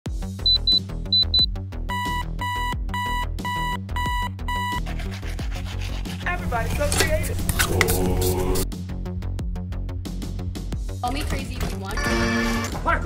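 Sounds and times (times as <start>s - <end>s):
background music: 0.1s - 13.0s
alarm clock beeping: 0.5s - 4.8s, 12.0s - 12.7s.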